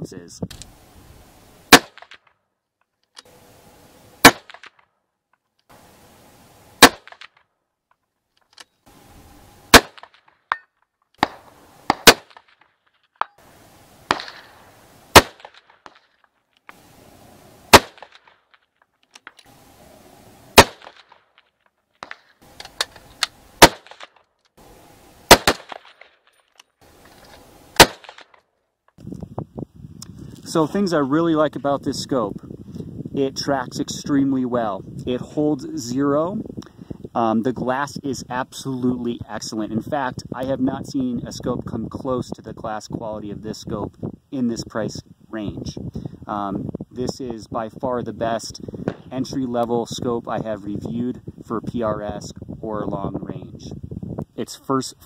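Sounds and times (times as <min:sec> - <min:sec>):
rifle shots: 0:01.7 - 0:02.3, 0:04.2 - 0:04.8, 0:06.8 - 0:07.4, 0:09.7 - 0:10.3, 0:11.2 - 0:12.6, 0:14.0 - 0:16.0, 0:17.7 - 0:18.4, 0:20.5 - 0:21.3, 0:22.0 - 0:24.1, 0:25.2 - 0:26.2, 0:27.7 - 0:28.4.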